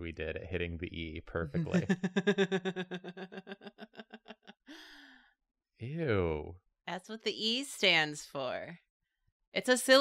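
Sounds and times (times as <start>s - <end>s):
person laughing quietly: 1.2s - 4.5s.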